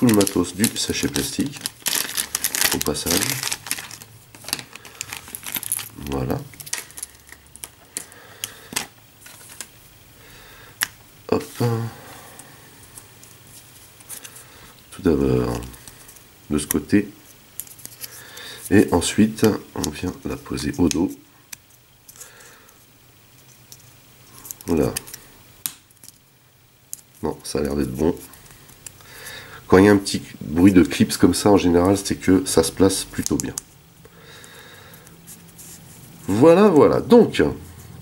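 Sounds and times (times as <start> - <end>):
faint handling ticks: 0.0 - 9.7.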